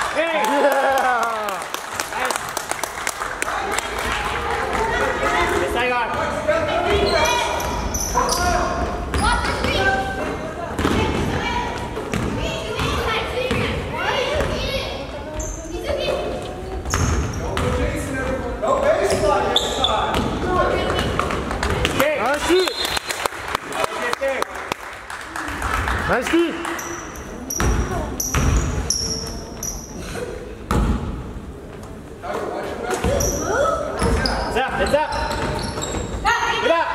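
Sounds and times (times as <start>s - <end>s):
crowd voices: 3.1s - 24.4s
basketball bouncing: 10.8s - 14.7s, 20.1s - 22.0s, 27.5s - 29.0s, 30.7s - 31.2s, 35.1s - 36.2s.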